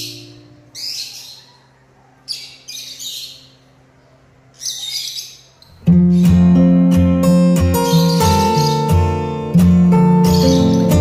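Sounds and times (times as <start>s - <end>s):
acoustic guitar music: 0.0s - 0.8s, 5.7s - 11.0s
lovebirds chattering calls: 0.0s - 3.7s, 4.5s - 6.5s, 7.8s - 9.2s, 10.2s - 11.0s.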